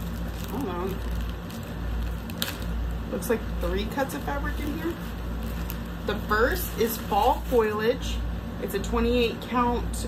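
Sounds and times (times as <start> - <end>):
plastic bag crinkling: 0.0 - 8.1.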